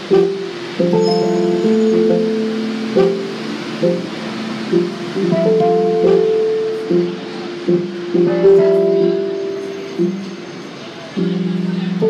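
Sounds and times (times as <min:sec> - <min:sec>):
solo instrumental music: 0:00.0 - 0:10.5, 0:11.2 - 0:12.0.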